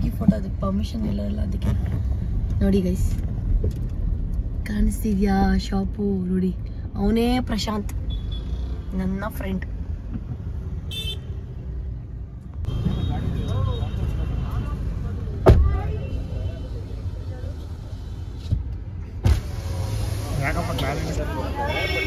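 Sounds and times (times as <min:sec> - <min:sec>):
street traffic rumble: 0:00.0 - 0:22.0.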